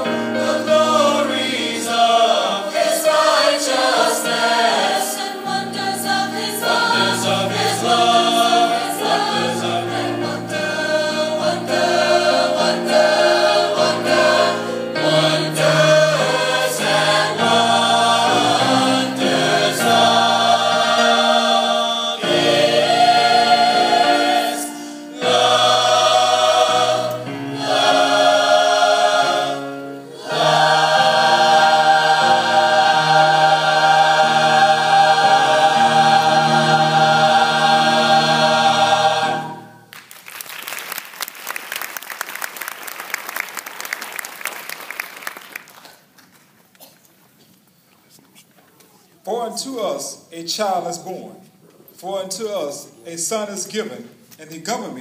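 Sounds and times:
choir singing: 0:00.0 - 0:39.9.

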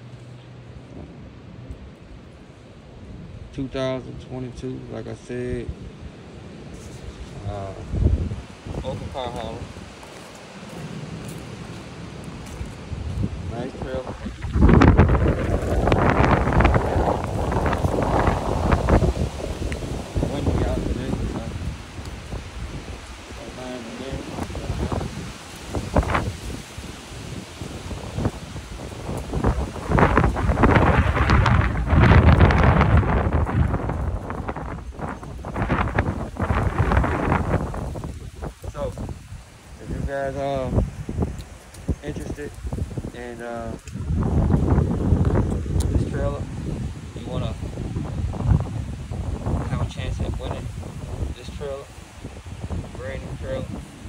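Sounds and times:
wind on microphone: 0:00.0 - 0:54.0.

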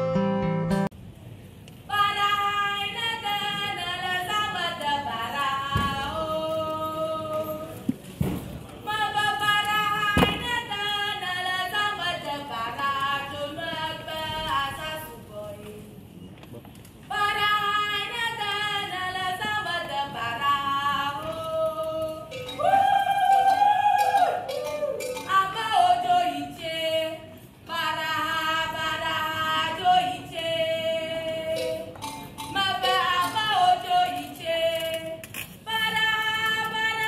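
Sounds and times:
person singing unaccompanied: 0:17.1 - 0:37.0.

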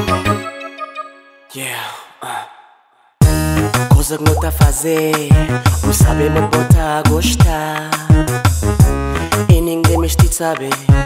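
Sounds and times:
backing music: 0:00.0 - 0:01.5, 0:03.2 - 0:11.0
man's breathy sigh with reverb: 0:01.6 - 0:03.2.

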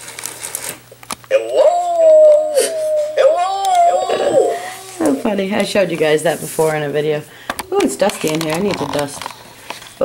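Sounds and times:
long wavering howl-like cry: 0:01.3 - 0:05.3.

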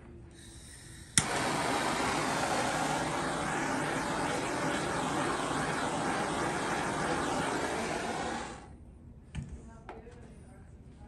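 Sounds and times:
gas hissing: 0:00.4 - 0:08.8
torch flame roaring: 0:01.2 - 0:08.7.

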